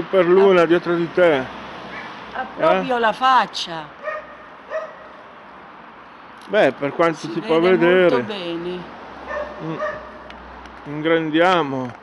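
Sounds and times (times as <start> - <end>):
dog barking: 1.9 - 2.2, 4.0 - 5.1, 9.3 - 10.3.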